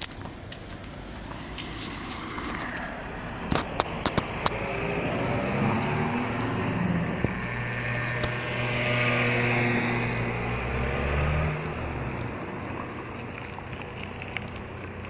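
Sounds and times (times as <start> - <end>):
car engine hum: 0.0 - 15.0
motor scooter driving by: 1.2 - 15.0.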